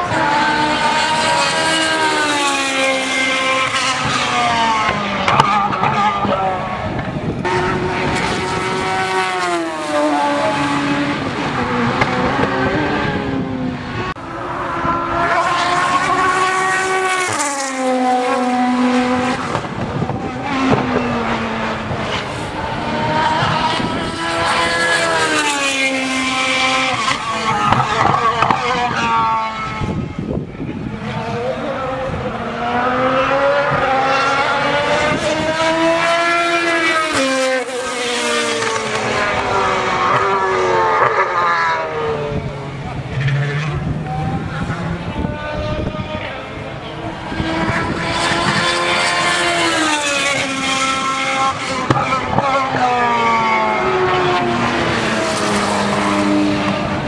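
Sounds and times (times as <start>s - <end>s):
engines shifting gears: 0.0s - 57.0s
loud noise of cars at speed: 0.0s - 57.0s
race cars passing: 0.0s - 57.0s.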